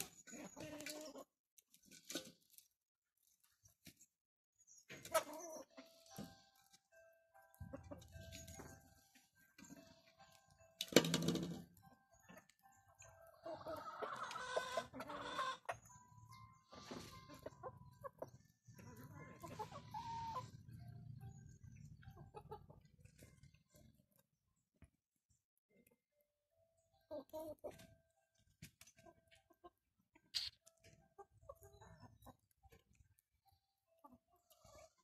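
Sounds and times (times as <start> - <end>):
hens and rooster clucking: 0.0 - 1.4, 11.1 - 24.0, 28.6 - 32.9, 34.0 - 35.0.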